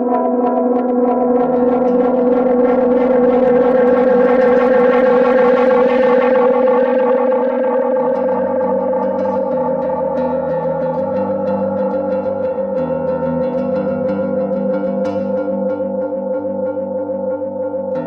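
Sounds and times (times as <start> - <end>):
electric guitar with echo: 0.0 - 18.0.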